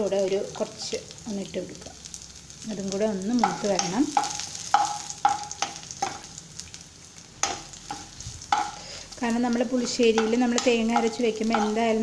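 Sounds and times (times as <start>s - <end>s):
hot oil sizzling in a pan: 0.0s - 12.0s
woman talking: 2.7s - 4.1s, 9.2s - 12.0s.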